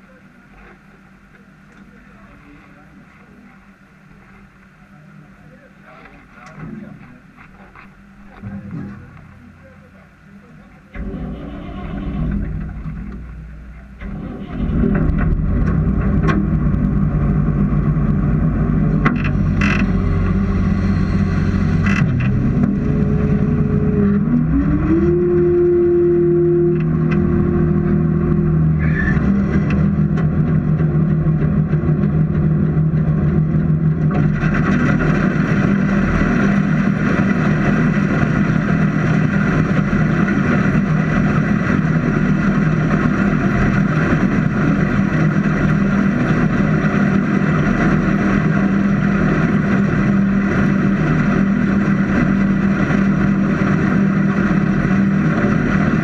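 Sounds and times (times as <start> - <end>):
combine harvester running: 0.0 - 56.0
machine whine: 0.0 - 56.0.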